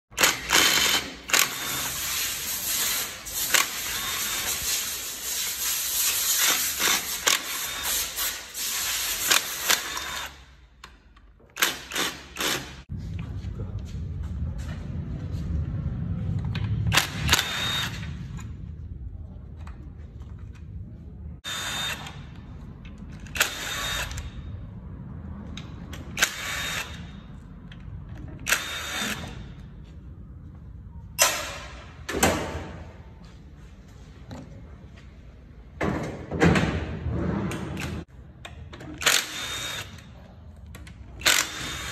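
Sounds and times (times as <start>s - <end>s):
impact wrench whining: 0.1s - 4.7s, 6.3s - 12.9s, 16.8s - 18.5s, 21.4s - 22.4s, 23.1s - 24.5s, 26.0s - 27.3s, 28.4s - 29.7s, 38.9s - 40.1s, 41.2s - 41.9s.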